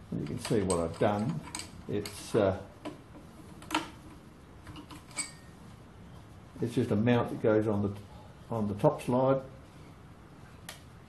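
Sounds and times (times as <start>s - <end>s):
ringing metal clink: 5.1s - 5.5s.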